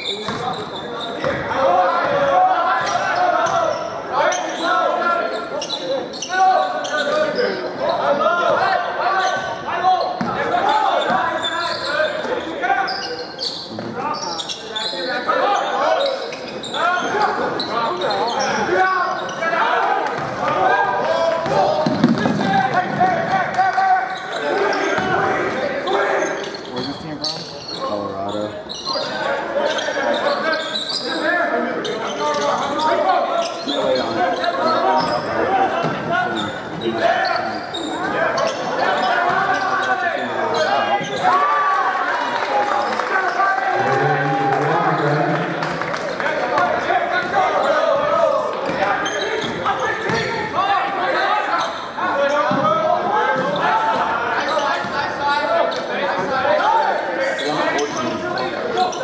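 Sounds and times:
spectators talking: 0.0s - 59.0s.

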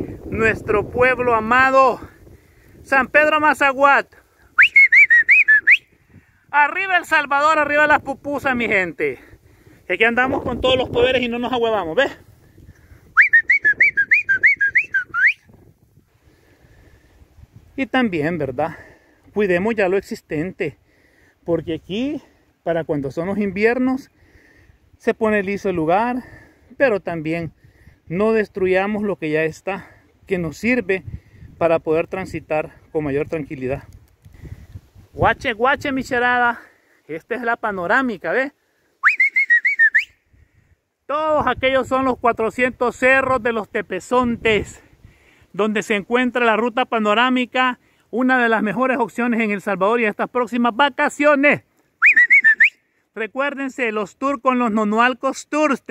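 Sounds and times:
sliding whistled notes: 4.6s - 5.9s, 13.2s - 15.4s, 39.0s - 40.2s, 52.0s - 52.8s.

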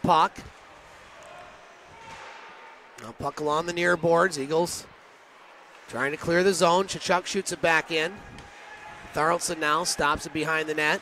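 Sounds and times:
low steady arena noise: 0.0s - 11.0s.

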